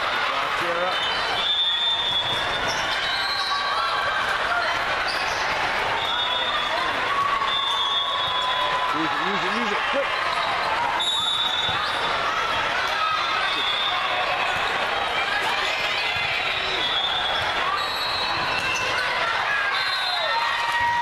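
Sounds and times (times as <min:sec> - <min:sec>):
sneakers squeaking on court floor: 0:00.9 - 0:03.7, 0:05.0 - 0:06.7, 0:10.3 - 0:12.2, 0:16.2 - 0:19.2.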